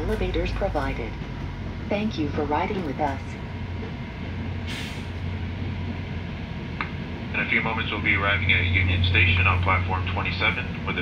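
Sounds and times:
train rumbling inside coach: 0.0s - 11.0s.

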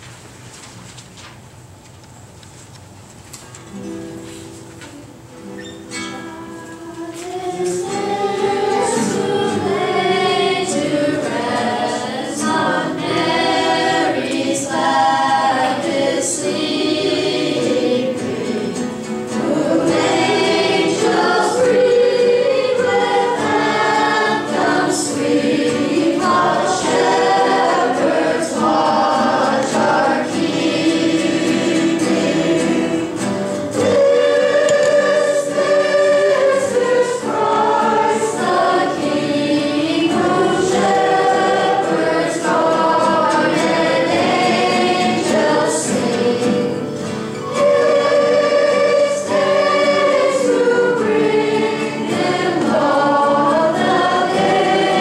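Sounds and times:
nylon-string guitar: 3.5s - 55.0s
steel-string acoustic guitar: 3.7s - 55.0s
group singing carol in unison: 6.2s - 55.0s.

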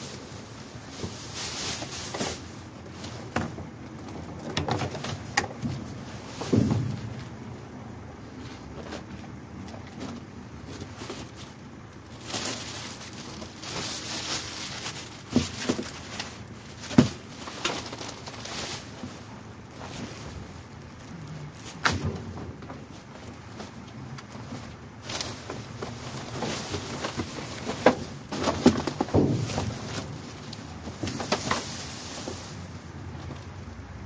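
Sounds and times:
crinkles and clicks of bags: 0.0s - 34.0s.

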